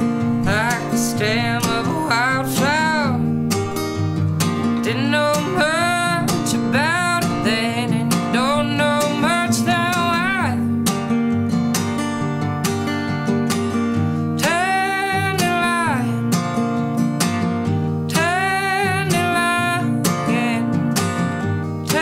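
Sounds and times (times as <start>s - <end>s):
acoustic guitar strumming: 0.0s - 22.0s
woman singing: 0.1s - 3.8s, 4.5s - 10.9s, 14.2s - 16.5s, 17.9s - 22.0s.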